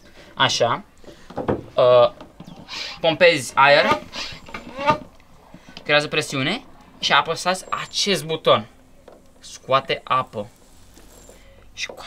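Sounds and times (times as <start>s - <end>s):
hand pump pumping air: 3.8s - 5.8s.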